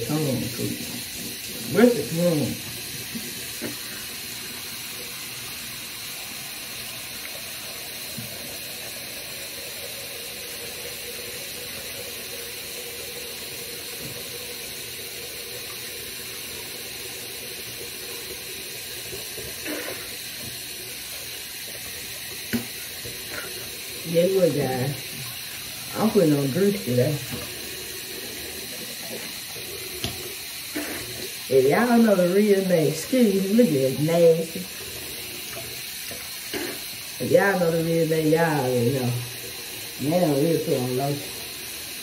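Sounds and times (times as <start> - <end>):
sink tap running: 0.0 - 42.0.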